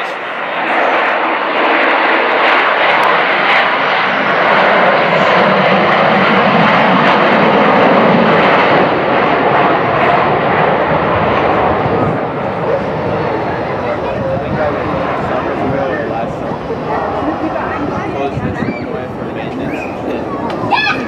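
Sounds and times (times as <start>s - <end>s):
jet engines roaring: 0.0s - 21.0s.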